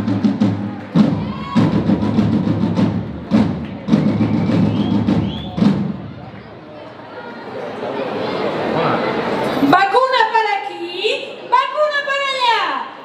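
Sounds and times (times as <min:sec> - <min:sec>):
fast loud drumming: 0:00.0 - 0:06.2.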